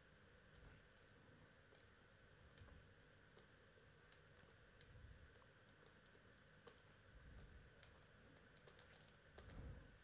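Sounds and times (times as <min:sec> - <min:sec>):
soft computer input clicks: 0:04.1 - 0:09.7.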